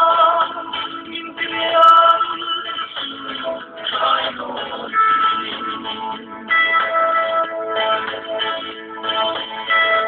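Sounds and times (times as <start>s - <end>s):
man singing: 0.0s - 7.0s
music: 0.0s - 10.0s.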